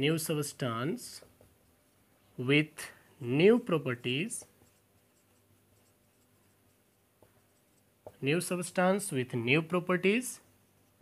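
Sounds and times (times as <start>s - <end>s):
marker writing on a whiteboard: 0.0s - 11.0s.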